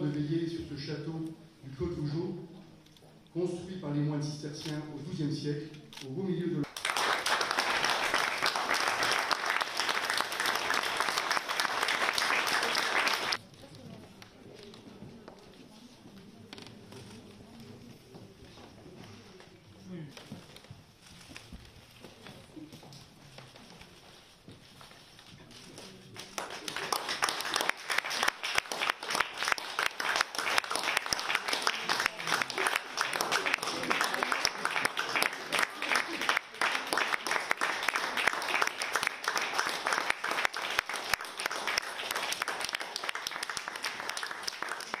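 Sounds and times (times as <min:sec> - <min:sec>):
faint murmur in room: 0:00.0 - 0:45.0
audience applauding: 0:06.6 - 0:13.4, 0:26.2 - 0:45.0.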